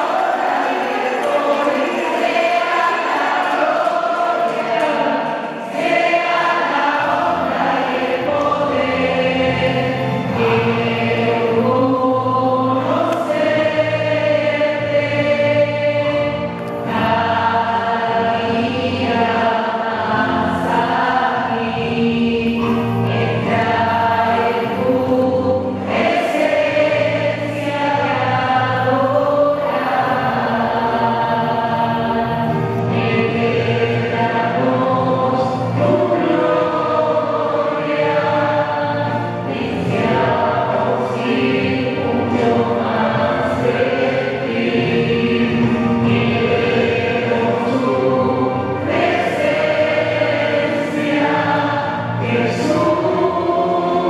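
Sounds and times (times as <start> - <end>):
choir singing worship song: 0.0 - 54.0
instrumental accompaniment: 0.0 - 54.0.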